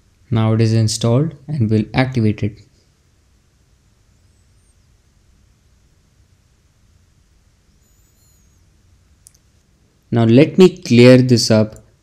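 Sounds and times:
faint high-pitched tone: 3.3s - 11.6s.

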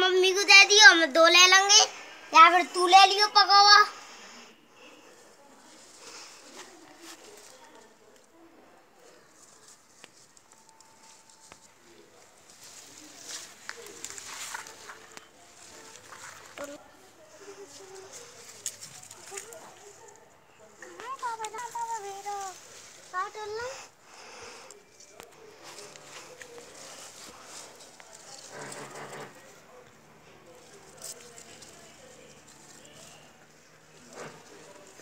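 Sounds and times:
leaves rustling: 4.0s - 8.4s, 9.0s - 35.0s.

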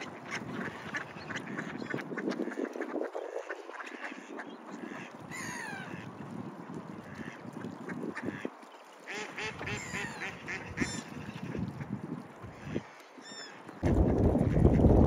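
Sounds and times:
ducks quacking: 0.0s - 6.1s, 6.9s - 13.0s.

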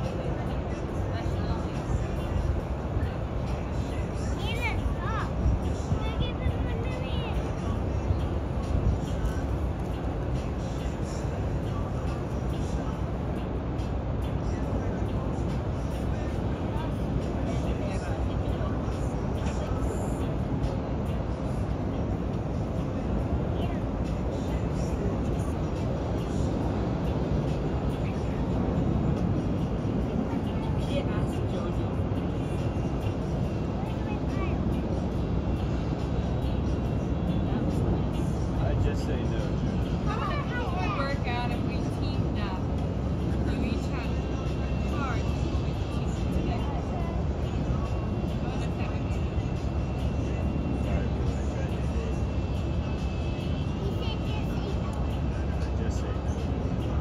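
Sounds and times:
faint indistinct voices: 0.0s - 57.0s
steady low rumble: 0.0s - 57.0s.

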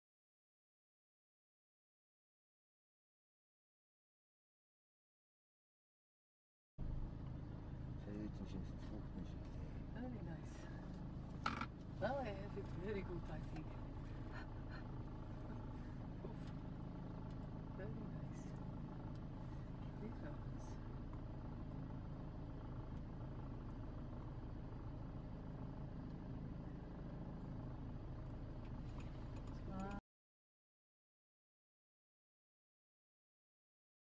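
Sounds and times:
vehicle engine idling: 6.8s - 30.0s.

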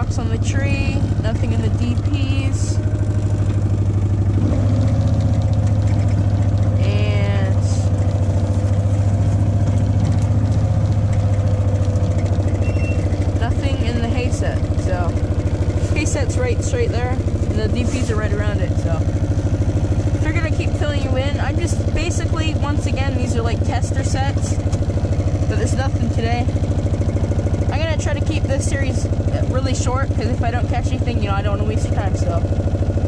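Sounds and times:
off-road vehicle engine running: 0.0s - 33.0s.

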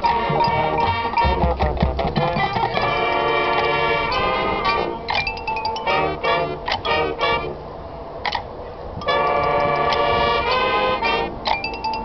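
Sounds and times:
marching band playing: 0.0s - 7.8s, 9.0s - 11.7s.

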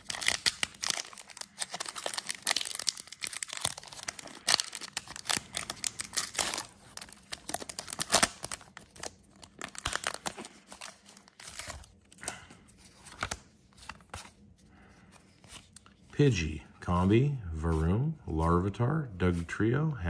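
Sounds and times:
foil wrapper crinkling and tearing: 0.0s - 12.4s.

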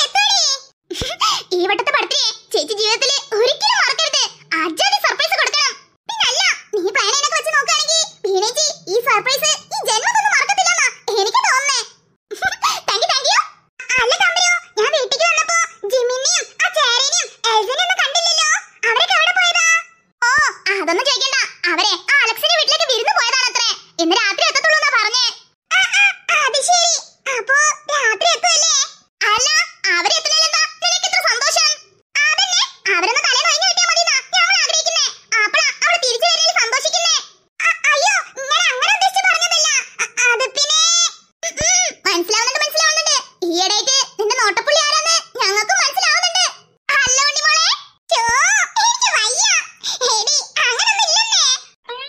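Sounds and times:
high-pitched cartoon voices talking: 0.0s - 52.0s.

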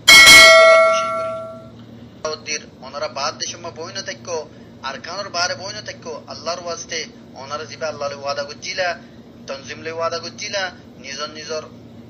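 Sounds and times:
bright bell ding: 0.0s - 1.7s.

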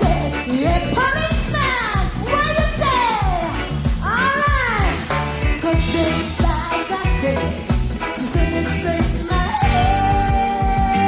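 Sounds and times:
bass and kick drum beat: 0.0s - 11.0s
reggae band playing: 0.0s - 11.0s.

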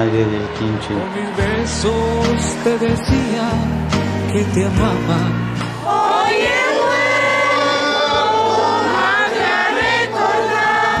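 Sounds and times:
women singing a hymn together: 5.8s - 11.0s.

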